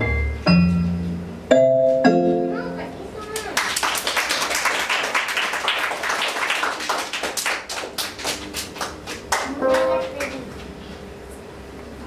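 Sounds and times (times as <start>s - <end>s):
audience applause: 3.4s - 10.5s.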